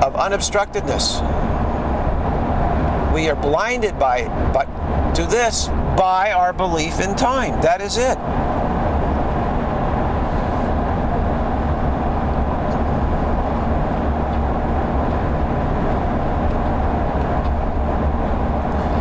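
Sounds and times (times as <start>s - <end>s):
road and engine noise in cabin: 0.0s - 19.0s.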